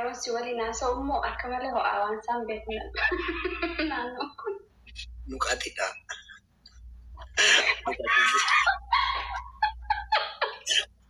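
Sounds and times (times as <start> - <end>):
high-pitched laughter: 7.2 - 10.8.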